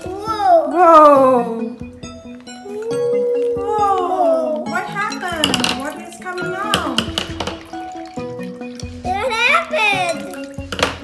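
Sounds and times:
background music: 0.0s - 11.0s
water splashing into glass bowl: 3.8s - 11.0s.

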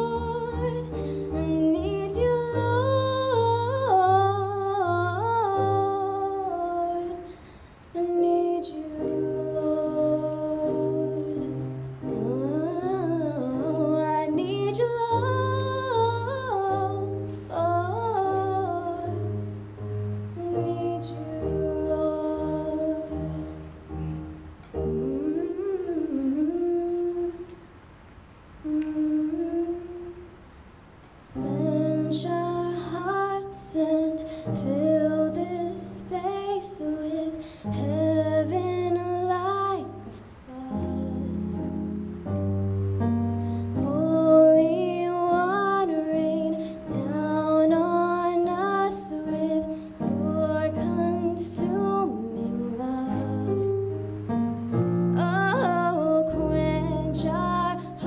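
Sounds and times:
woman singing slow melody: 0.0s - 27.9s, 28.6s - 30.5s, 31.4s - 42.6s, 43.3s - 58.0s
electric keyboard chords: 8.8s - 26.8s, 31.4s - 58.0s.

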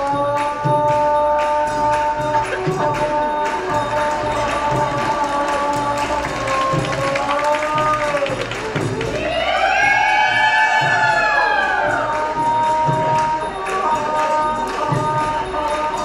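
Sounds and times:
light steady percussion: 0.0s - 16.0s.

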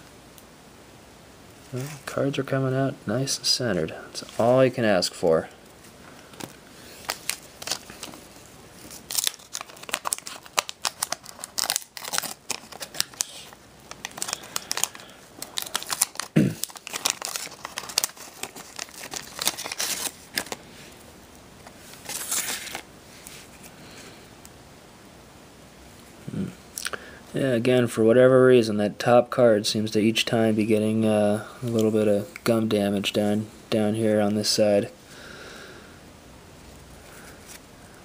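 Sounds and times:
wax paper wrapper tearing: 6.9s - 8.2s, 8.8s - 20.6s, 21.9s - 22.9s.

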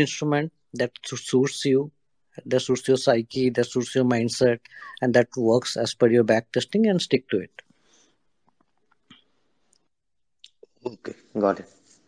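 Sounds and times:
man speaking: 0.0s - 7.6s, 10.5s - 11.9s.

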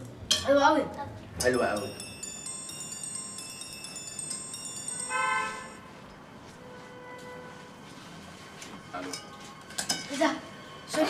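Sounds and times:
bell-like chimes ringing: 1.4s - 5.9s
horn-like tone: 5.1s - 5.9s.

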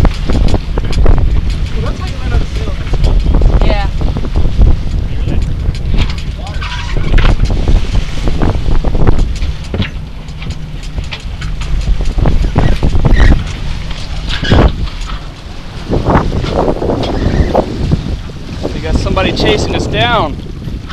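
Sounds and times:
wind buffeting microphone: 0.0s - 20.9s.

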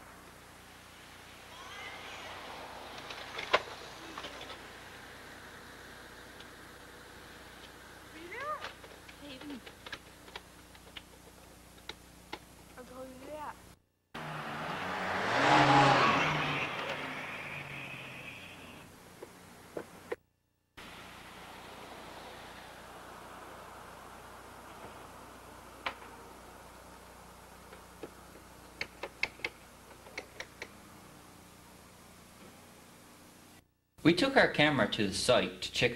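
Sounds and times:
motor vehicle passing: 0.0s - 11.6s, 14.2s - 20.1s, 20.8s - 32.0s
distant voices: 0.0s - 13.6s, 14.2s - 20.1s, 20.8s - 32.4s
faint steady hum: 0.0s - 14.2s, 15.6s - 35.9s.

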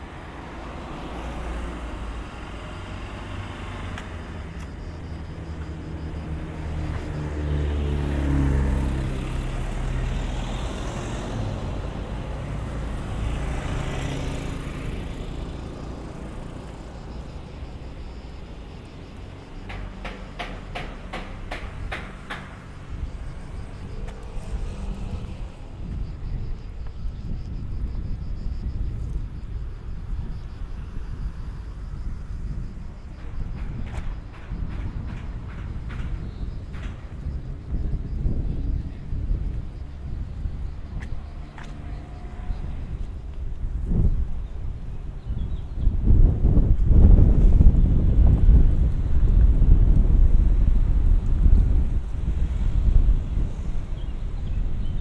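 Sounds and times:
motor scooter passing: 0.0s - 26.4s
car passing close: 0.0s - 55.0s
road traffic: 0.0s - 55.0s.

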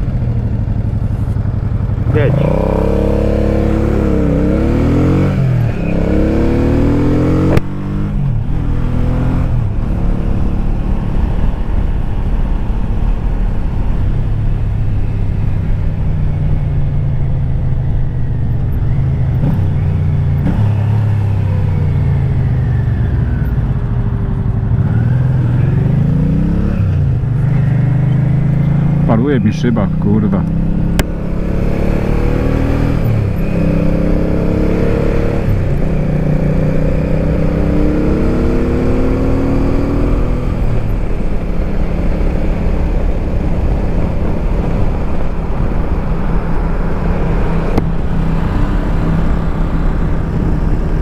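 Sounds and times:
motorcycle engine: 0.0s - 51.0s.

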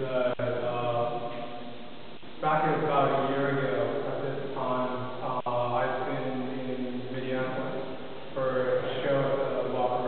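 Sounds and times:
man chanting in long tones: 0.0s - 1.8s, 8.4s - 10.0s.

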